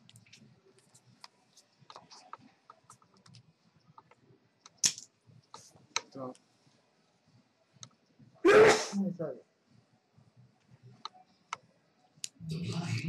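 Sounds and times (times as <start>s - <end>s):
person's short loud burst: 8.4s - 9.0s.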